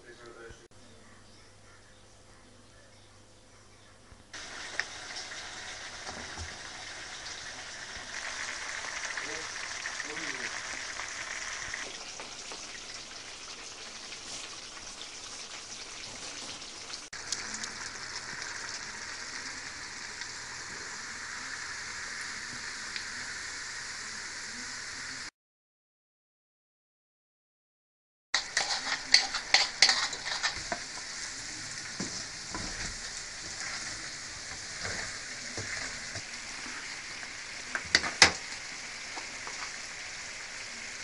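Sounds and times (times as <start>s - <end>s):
potatoes sizzling in hot oil: 4.4s - 25.3s, 28.4s - 41.0s.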